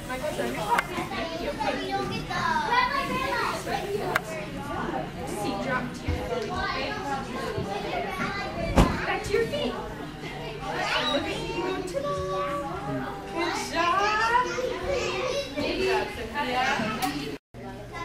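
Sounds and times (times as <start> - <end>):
children chattering and calling: 0.0 - 18.0.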